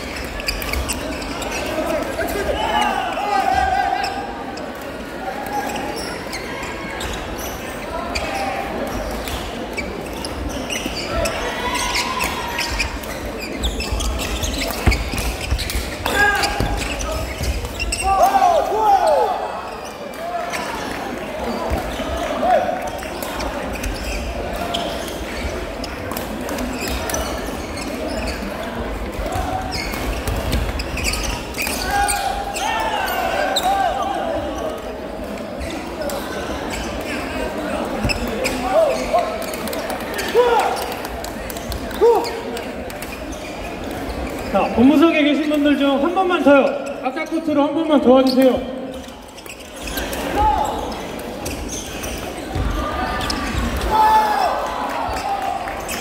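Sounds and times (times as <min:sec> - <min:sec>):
sneakers squeaking on court floor: 0:00.0 - 0:54.2, 0:55.1 - 0:56.0
murmur of voices echoing: 0:00.0 - 0:56.0.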